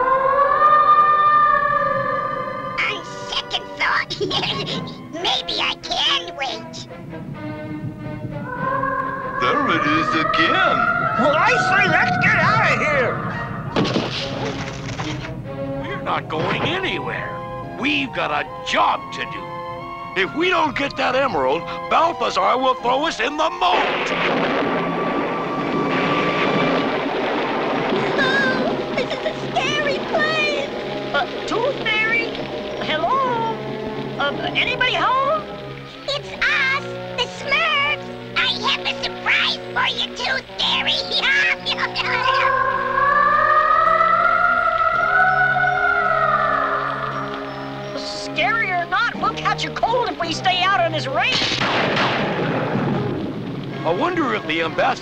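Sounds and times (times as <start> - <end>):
heavy rain pouring: 0.0 - 55.0
thunderclap crack and rumble: 6.4 - 19.8, 23.6 - 42.4, 49.4 - 55.0.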